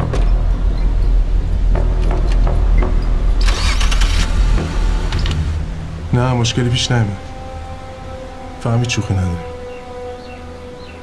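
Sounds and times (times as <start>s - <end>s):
car engine starting and running: 1.4s - 6.1s.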